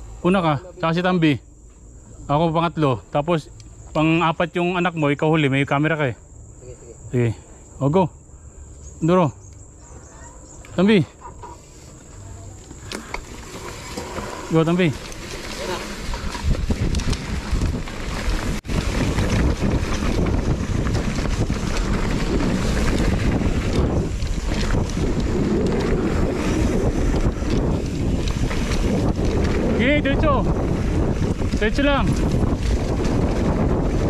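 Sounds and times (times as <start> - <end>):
bike rattling over stony trail: 9.9 - 34.0
tyre rumble: 11.9 - 34.0
wind buffeting microphone: 12.4 - 34.0.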